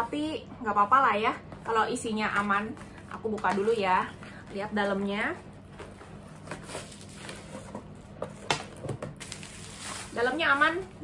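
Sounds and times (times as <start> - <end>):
bubble wrap crinkling: 9.2 - 11.0.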